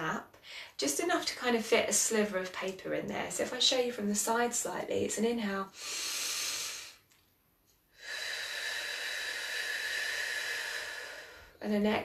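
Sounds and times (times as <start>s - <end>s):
woman exhaling with airy hiss: 5.7s - 7.1s, 8.0s - 11.6s
woman inhaling through nose: 5.7s - 7.1s, 8.0s - 11.6s.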